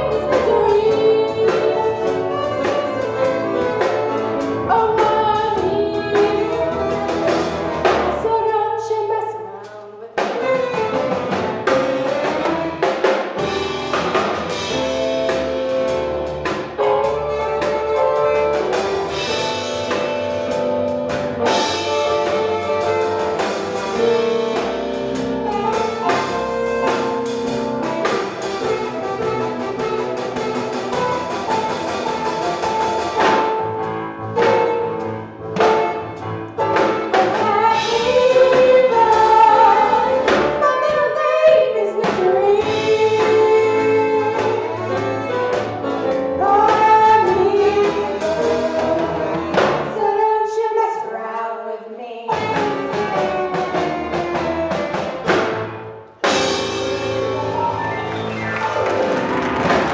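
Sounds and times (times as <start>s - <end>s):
band with saxophones and drums: 0.0s - 51.5s, 52.1s - 59.9s
person singing: 37.2s - 44.9s.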